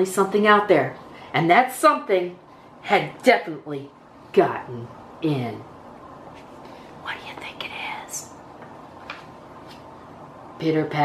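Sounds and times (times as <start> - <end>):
woman whispering: 7.0 - 8.4.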